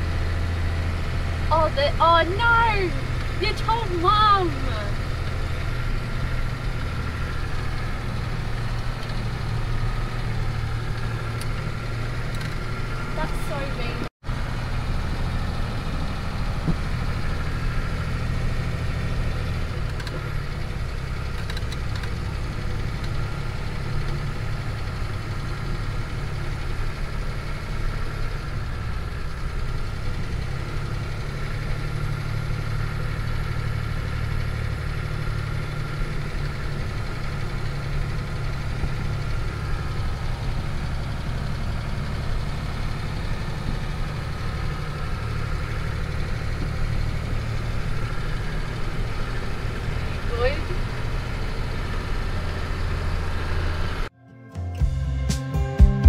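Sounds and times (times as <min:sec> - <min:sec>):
car engine droning while driving: 0:00.0 - 0:54.2.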